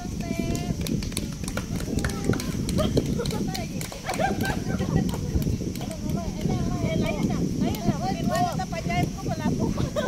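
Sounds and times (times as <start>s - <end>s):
women and children talking: 0.0s - 10.0s.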